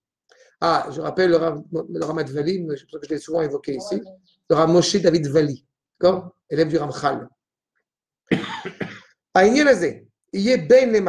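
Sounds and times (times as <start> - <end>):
person speaking: 0.6 - 7.3
person coughing: 8.3 - 9.1.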